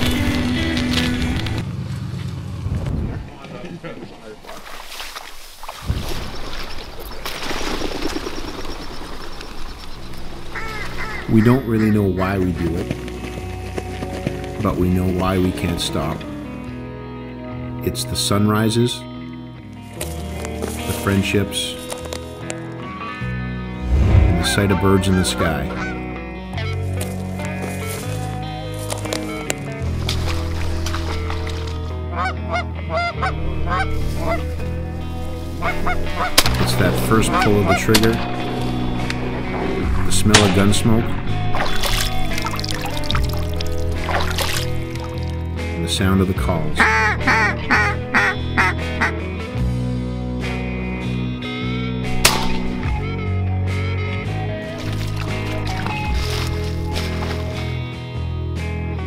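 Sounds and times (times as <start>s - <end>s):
background music with low notes: 0.0s - 1.6s, 7.2s - 59.0s
geese honking: 8.2s - 12.9s, 24.4s - 26.0s, 31.0s - 42.4s, 46.6s - 49.4s
duck call quacks: 10.6s - 11.9s, 32.1s - 34.4s, 46.8s - 49.2s
shotgun shot: 52.2s - 52.8s.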